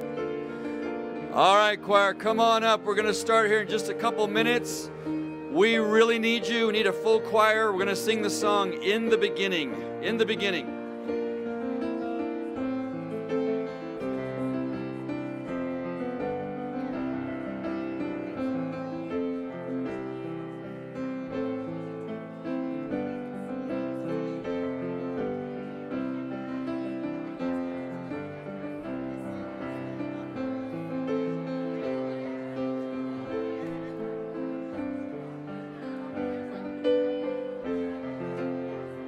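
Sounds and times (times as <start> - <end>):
piano music: 0.0 - 39.0.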